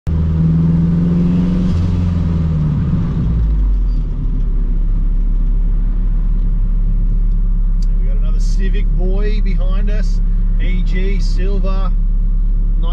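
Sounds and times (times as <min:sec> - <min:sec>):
car engine heard from cabin: 0:00.1 - 0:12.9.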